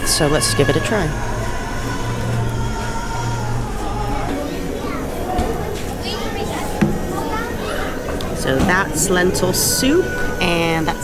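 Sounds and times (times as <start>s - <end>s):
background voices: 0.0s - 11.0s
music playing: 0.0s - 11.0s
steady low hum: 0.0s - 11.0s.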